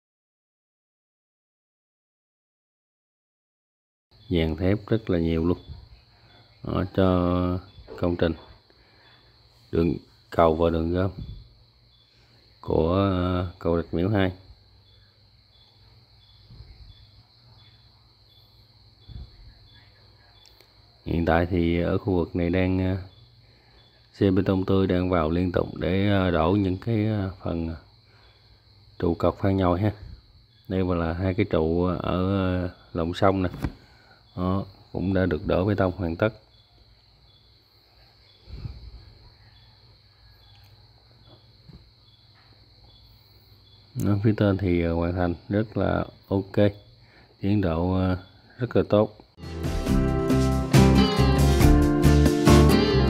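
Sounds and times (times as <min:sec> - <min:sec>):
insects chirring: 0:04.1 - 0:53.0
steady high hiss: 0:04.2 - 0:39.5
soft low thump: 0:16.4 - 0:16.9.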